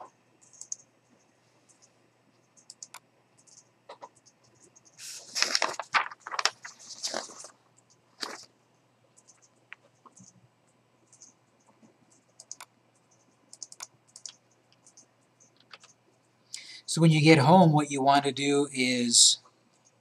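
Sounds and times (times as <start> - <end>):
computer mouse clicks: 0.0 - 5.0, 9.2 - 16.3.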